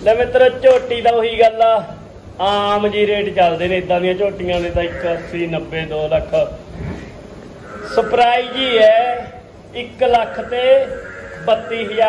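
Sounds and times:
buffalo calling: 7.6 - 9.3, 10.0 - 12.0.

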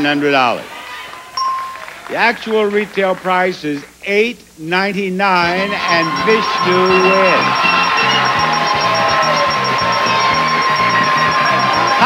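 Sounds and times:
studio audience cheering: 0.6 - 3.4, 5.4 - 12.0
game show music cue: 1.4 - 2.0, 5.6 - 12.0
high electronic tone: 5.4 - 12.0.

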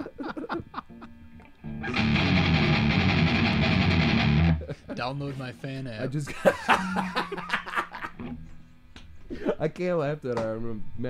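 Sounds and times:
fast electric guitar riff: 1.7 - 4.7.

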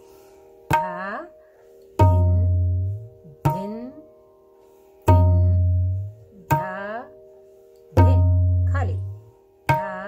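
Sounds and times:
tabla strokes: 0.0 - 10.0.

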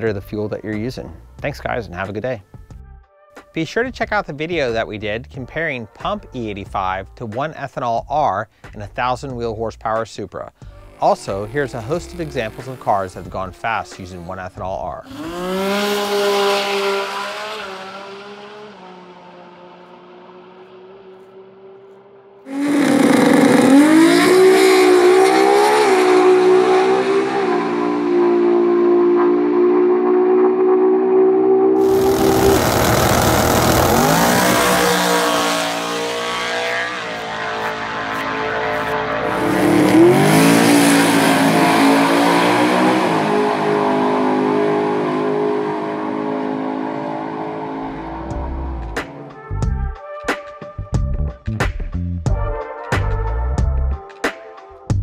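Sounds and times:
drag race cars at full throttle: 10.6 - 14.1, 15.0 - 49.5
loud rushing noise: 31.8 - 36.0.

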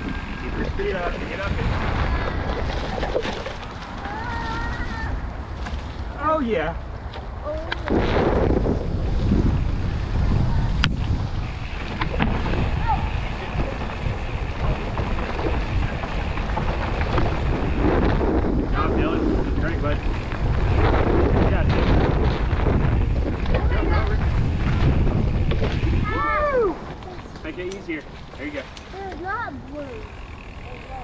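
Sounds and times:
bike trail noise: 0.0 - 31.0
wind buffeting microphone: 0.0 - 31.0.

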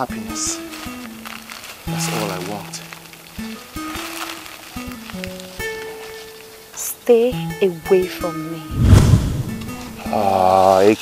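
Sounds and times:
plucked string notes: 9.5 - 10.5.

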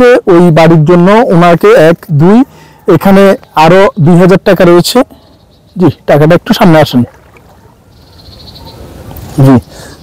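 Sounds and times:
frogs calling faintly: 2.4 - 10.0.

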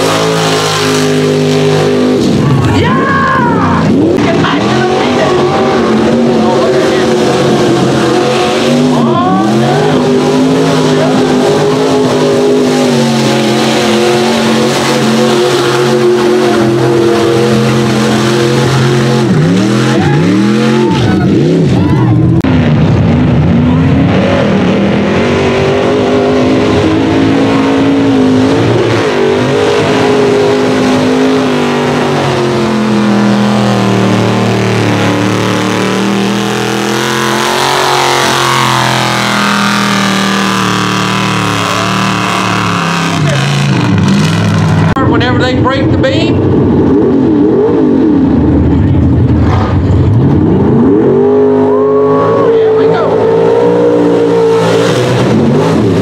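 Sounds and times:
truck engines revving high: 0.0 - 56.0.

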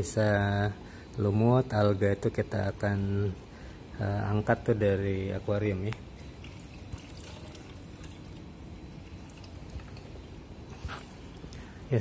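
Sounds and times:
faint water drips: 5.8 - 10.7
water running into a bucket: 6.3 - 10.4.

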